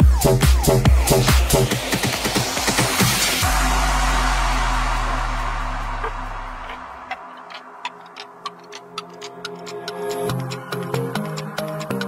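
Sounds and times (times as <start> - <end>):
electronic club music: 0.0 - 12.0
sharp ticking percussion: 3.4 - 12.0.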